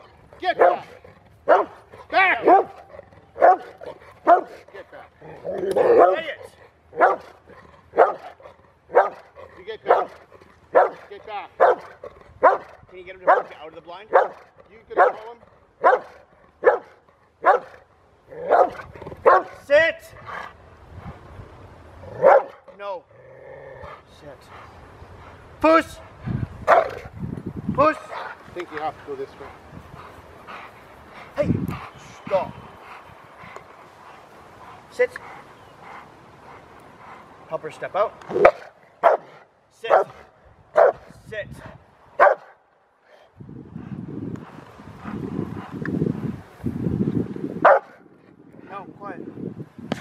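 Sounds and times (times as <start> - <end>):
dog barking: 0.6 - 0.9, 1.5 - 1.8, 2.4 - 4.6, 5.9 - 6.2, 7.0 - 7.3, 8.0 - 9.3, 9.9 - 14.4, 15.0 - 17.8, 18.4 - 19.6, 22.2 - 22.6, 26.7 - 27.1, 38.4 - 40.2, 40.8 - 41.0, 42.2 - 42.6, 47.6 - 48.0.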